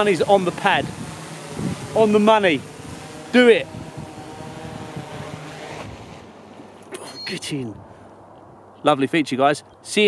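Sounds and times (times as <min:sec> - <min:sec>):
wind on microphone: 0:00.0 - 0:06.3
drone rotors whirring: 0:00.0 - 0:07.3.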